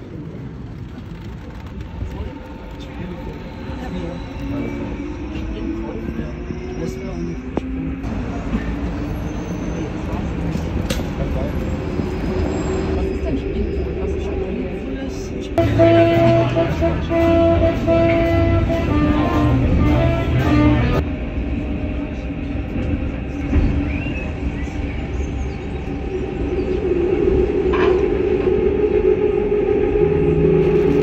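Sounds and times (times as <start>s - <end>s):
train rumble inside carriage: 0.0s - 31.0s.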